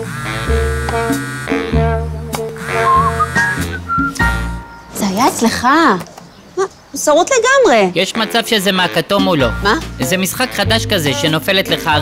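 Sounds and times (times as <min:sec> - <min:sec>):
phone vibrating buzz: 0:00.0 - 0:04.5.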